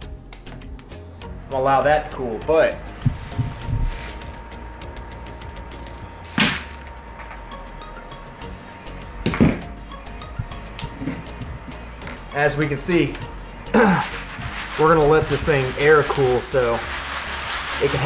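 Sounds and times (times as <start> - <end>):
quiet background music: 0.0 - 18.0
coffee beans rattling into colander: 12.4 - 18.0.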